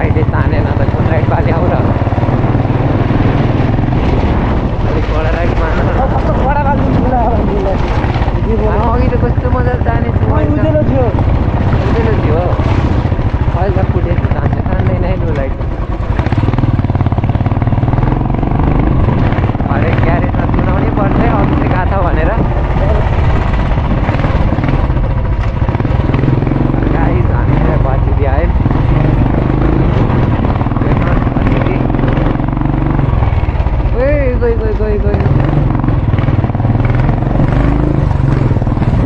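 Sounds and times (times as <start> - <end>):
motorcycle engine running: 0.0 - 39.0
voices talking: 0.0 - 39.0.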